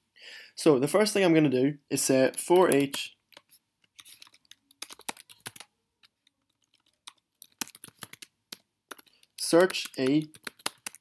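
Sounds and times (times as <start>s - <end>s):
typing on computer keyboard: 2.3s - 5.7s, 6.4s - 11.0s.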